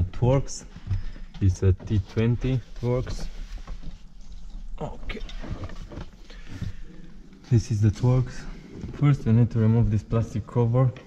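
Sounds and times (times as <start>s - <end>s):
handling knocks and rustles: 0.0s - 9.4s
low steady hum: 0.0s - 11.0s.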